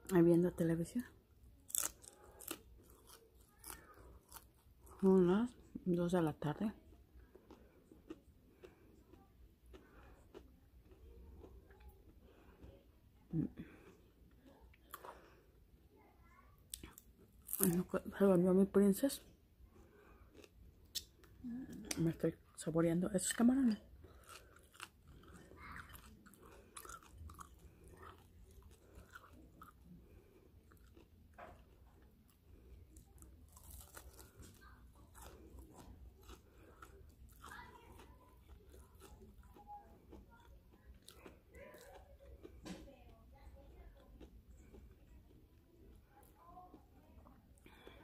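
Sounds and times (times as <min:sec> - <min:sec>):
crunchy chewing: 0:01.6 - 0:05.1, 0:07.0 - 0:12.9, 0:16.7 - 0:17.8, 0:19.7 - 0:22.0, 0:23.7 - 0:48.0.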